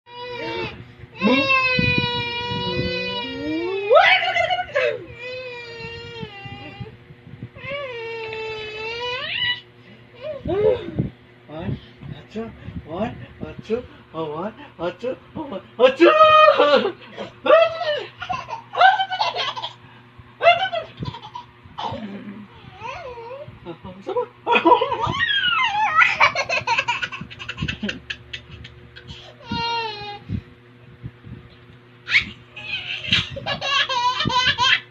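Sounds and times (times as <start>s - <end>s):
toddler laughing: 17.8s - 19.8s, 20.4s - 22.0s, 24.7s - 30.2s, 32.1s - 34.9s
high-pitched squeal of laughter: 24.9s - 28.7s
baby's high-pitched held voice: 29.4s - 30.2s.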